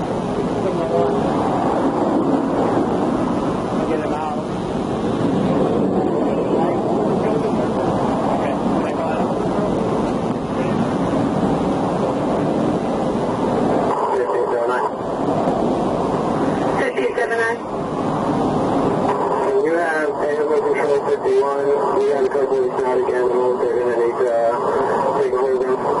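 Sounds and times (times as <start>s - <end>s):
highway traffic rushing: 0.0s - 22.9s
wind noise on microphone: 0.0s - 26.0s.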